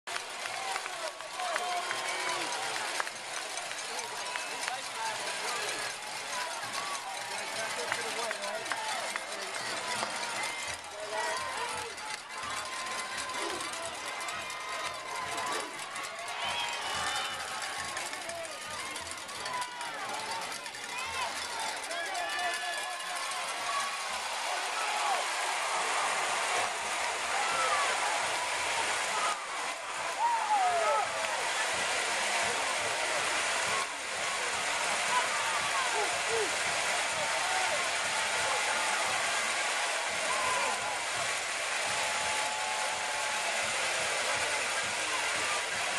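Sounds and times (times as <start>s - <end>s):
stadium crowd cheering: 0.0s - 45.9s.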